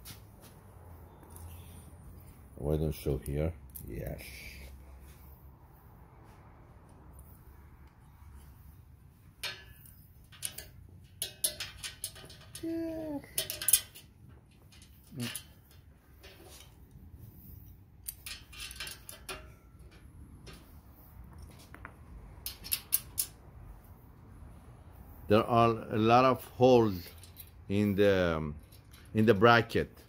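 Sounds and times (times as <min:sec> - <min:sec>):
small metal clicks and rattles: 0:09.4 - 0:17.0, 0:17.6 - 0:20.7, 0:21.3 - 0:23.4, 0:27.0 - 0:27.8, 0:28.6 - 0:29.5.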